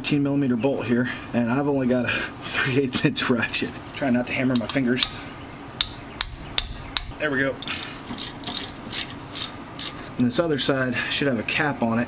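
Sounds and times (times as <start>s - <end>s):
hammer striking metal ratchet: 5.8s - 10.0s.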